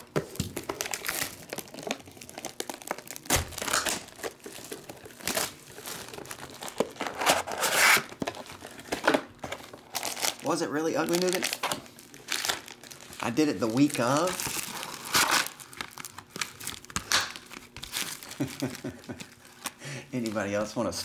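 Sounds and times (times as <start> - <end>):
cellophane tearing and crinkling: 0.0 - 20.8.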